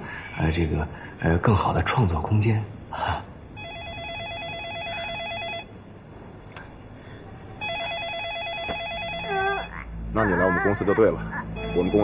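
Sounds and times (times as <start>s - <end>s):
telephone ringing with electronic trill: 3.6s - 5.7s, 7.6s - 9.7s.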